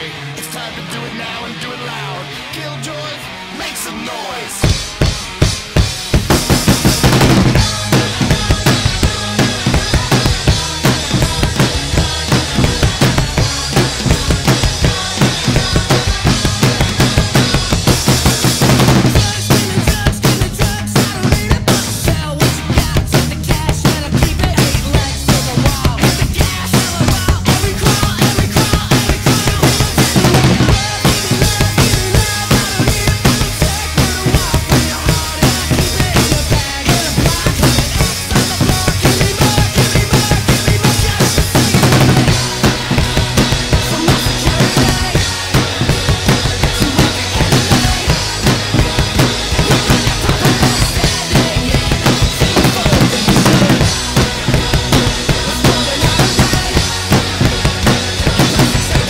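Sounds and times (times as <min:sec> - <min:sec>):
recorded pop-punk song: 0:00.0 - 0:59.0
rock drum kit fast beat: 0:00.0 - 0:59.0.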